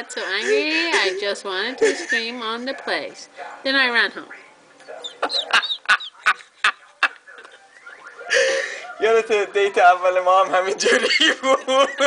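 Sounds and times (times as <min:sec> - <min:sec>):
man laughing: 0:05.2 - 0:07.5, 0:10.8 - 0:12.0.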